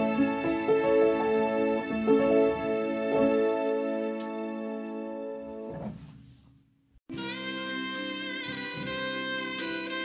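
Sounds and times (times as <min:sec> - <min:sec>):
upright piano chords: 0:00.0 - 0:05.9.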